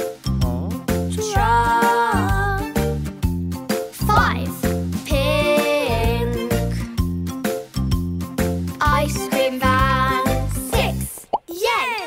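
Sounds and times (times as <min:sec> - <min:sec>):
bouncy children's song: 0:00.0 - 0:12.0.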